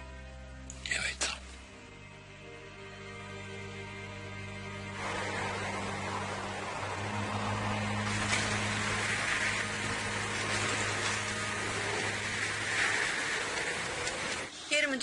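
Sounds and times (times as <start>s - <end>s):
blizzard wind hissing: 4.4s - 14.8s.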